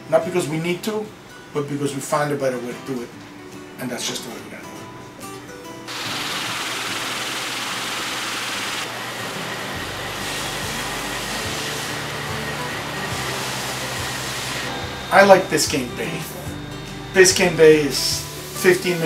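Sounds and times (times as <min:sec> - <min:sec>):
music: 0:00.0 - 0:19.0
coolant flowing: 0:05.9 - 0:16.4
band saw cutting metal: 0:05.9 - 0:19.0.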